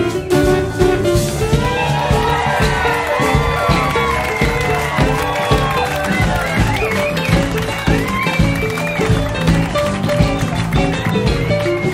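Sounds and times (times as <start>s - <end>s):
drums and bass beat: 0.0s - 11.9s
sliding lead melody: 0.0s - 11.9s.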